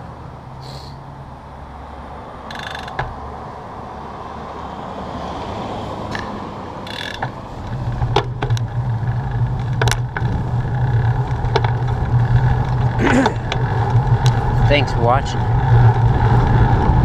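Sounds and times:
bike clicks and rattles: 0:02.5 - 0:03.2, 0:06.1 - 0:17.0
bicycle tyre noise: 0:06.9 - 0:17.0
wind rumbling on microphone: 0:07.4 - 0:17.0.

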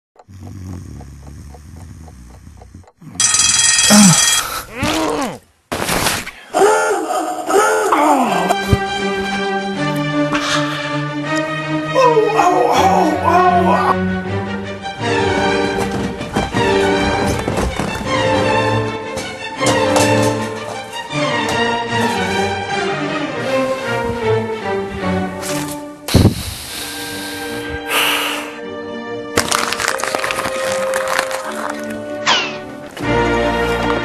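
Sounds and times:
clock ticking: 0:00.2 - 0:03.9
alarm clock bell ringing: 0:03.2 - 0:04.5
music: 0:07.9 - 0:34.0.

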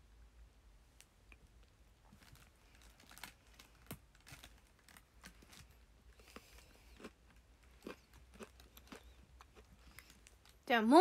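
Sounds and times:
teeth nibbling chocolate: 0:05.1 - 0:10.6.

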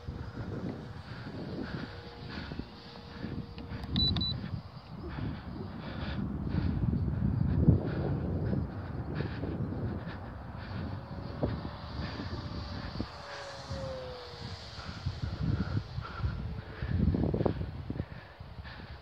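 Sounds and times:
model plane motor droning overhead: 0:00.0 - 0:19.0
wind buffeting microphone: 0:00.0 - 0:19.0.

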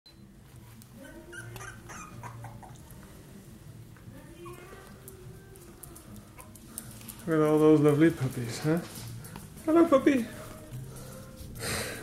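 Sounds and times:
puppies whimpering and yipping: 0:01.0 - 0:02.9, 0:04.4 - 0:05.0.

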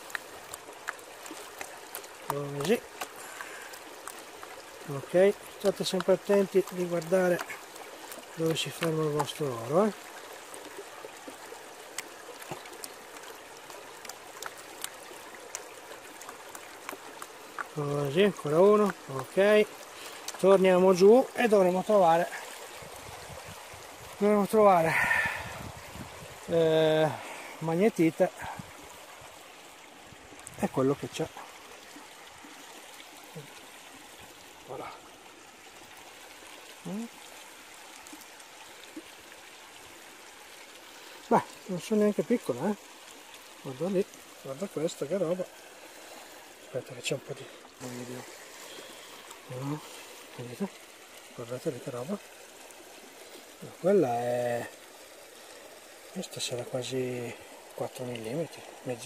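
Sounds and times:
river water trickling and lapping: 0:00.0 - 0:59.0.

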